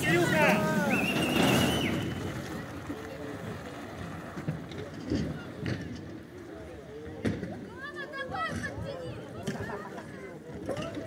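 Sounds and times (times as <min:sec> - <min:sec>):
faint voices of people: 0:00.0 - 0:11.0.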